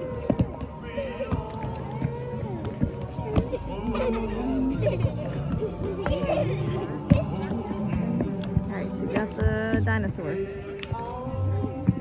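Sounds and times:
indistinct voices: 0.0s - 12.0s.

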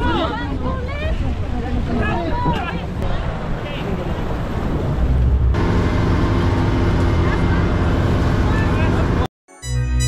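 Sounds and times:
boat engine humming: 0.0s - 9.3s.

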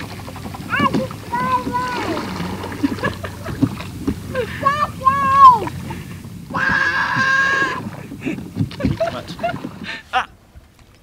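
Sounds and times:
toddler yelling: 0.7s - 2.3s, 4.6s - 5.7s
child calling softly: 0.7s - 2.4s, 4.6s - 5.7s.

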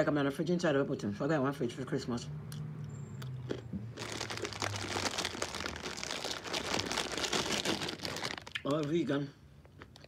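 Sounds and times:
plastic bag crinkling: 3.9s - 9.2s.

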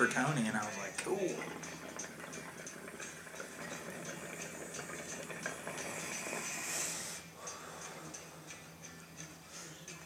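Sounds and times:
water bubbling in glass pipe: 0.0s - 7.1s.

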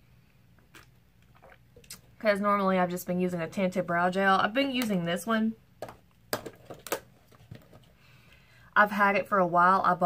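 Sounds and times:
makeup items clicking and tapping: 5.8s - 7.9s.

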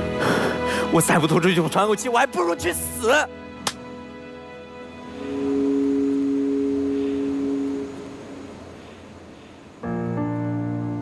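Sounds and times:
low two-note chord: 5.1s - 8.6s.

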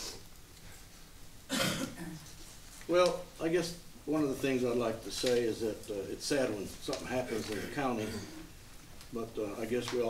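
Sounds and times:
cough: 1.5s - 2.2s, 8.0s - 8.5s.

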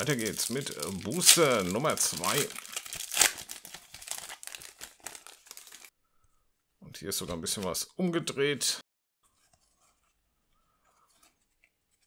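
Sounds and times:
foil wrapper crinkling: 0.0s - 5.9s.

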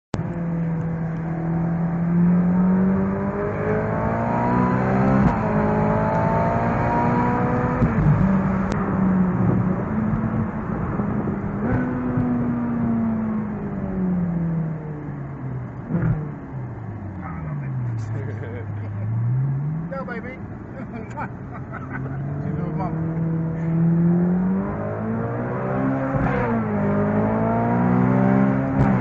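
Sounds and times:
car engine accelerating through gears: 0.2s - 20.2s, 21.0s - 29.0s.

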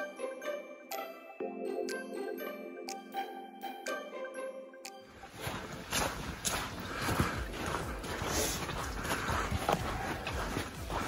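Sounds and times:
footsteps on dirt and sand: 5.2s - 11.0s.

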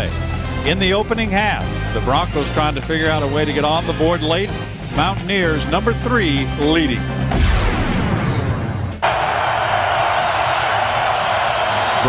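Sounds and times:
stadium crowd noise: 9.0s - 12.0s.

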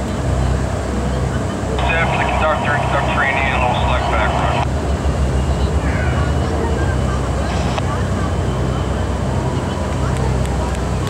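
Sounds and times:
boat engines droning: 0.0s - 11.0s
voice over loudspeaker: 1.8s - 4.7s.

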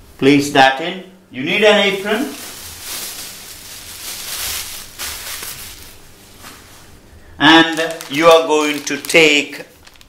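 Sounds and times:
plastic apron rustling: 1.5s - 10.0s.

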